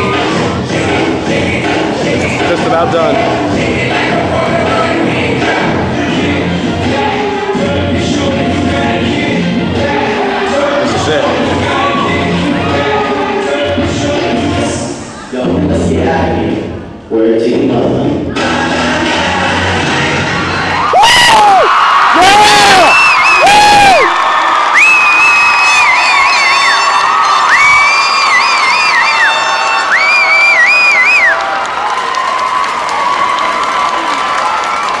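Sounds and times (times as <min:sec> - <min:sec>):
crowd cheering: 0:20.1 - 0:35.0
loud whoops: 0:20.8 - 0:35.0
long high whistles: 0:24.7 - 0:31.4.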